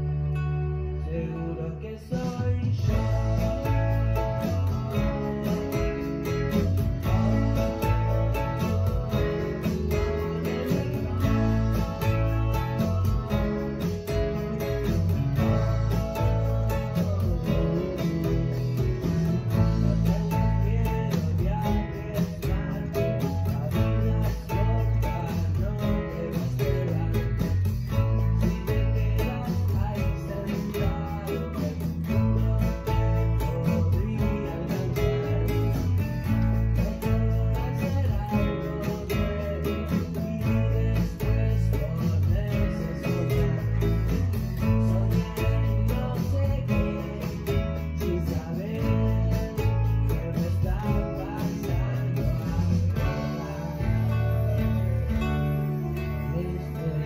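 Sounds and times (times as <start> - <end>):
nylon-string guitar strumming chords: 0.0 - 57.0.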